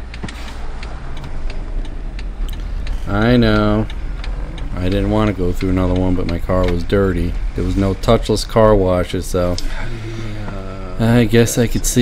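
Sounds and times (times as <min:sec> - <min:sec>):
engine and road rumble: 0:00.0 - 0:12.0
turn signal ticking: 0:00.0 - 0:12.0.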